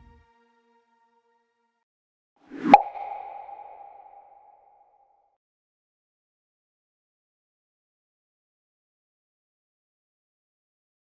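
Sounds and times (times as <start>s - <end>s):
sharp pop: 2.6s - 4.3s.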